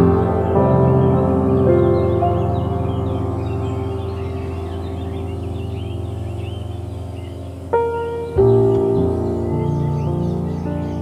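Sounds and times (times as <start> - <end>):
small birds chirping: 0.0 - 11.0
soft piano chord: 0.0 - 11.0.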